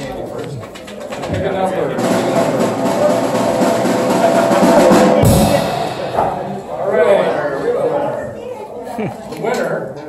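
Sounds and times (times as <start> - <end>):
murmur of voices: 0.0 - 10.0
drum roll: 1.3 - 7.4
bass drum hit: 2.0 - 7.1
cymbal crash: 2.0 - 7.3.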